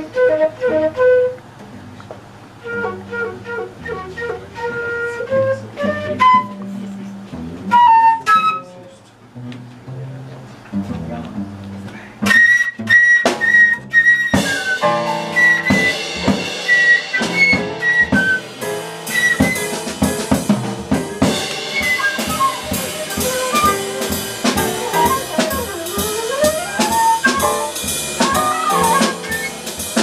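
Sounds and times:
jazz combo playing: 0.0 - 1.4, 2.5 - 30.0
flute melody: 0.0 - 1.5, 2.6 - 9.0, 12.2 - 20.4, 21.2 - 30.0.

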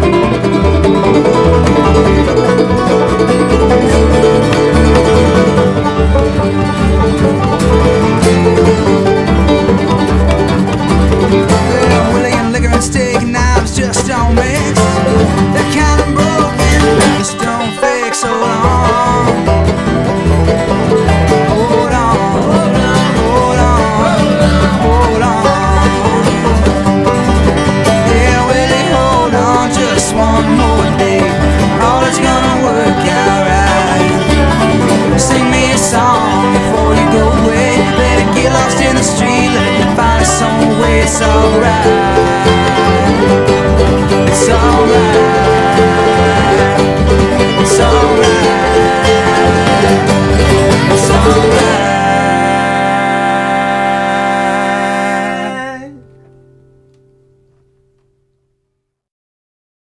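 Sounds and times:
steady bass beat: 0.0 - 51.9
wavering lead line: 0.0 - 56.0
plucked strings: 0.0 - 58.2.

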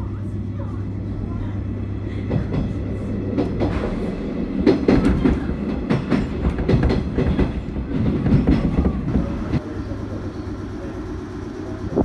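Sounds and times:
train cabin rumble: 0.0 - 12.0
wheels clacking over rail joints: 2.3 - 9.8.

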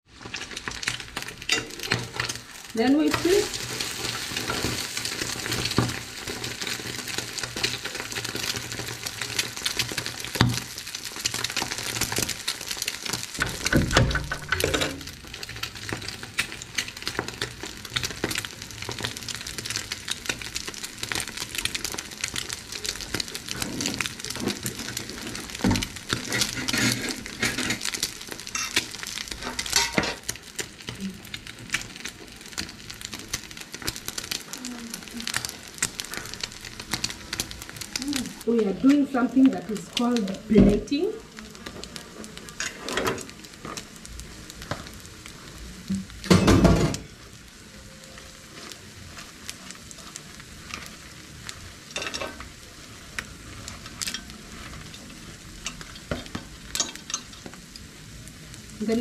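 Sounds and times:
omelette sizzling in frying pan: 0.0 - 59.0.

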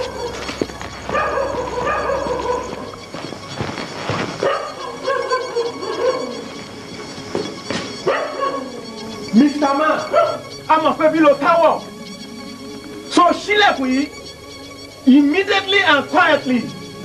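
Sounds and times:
dog crying: 0.0 - 12.9.

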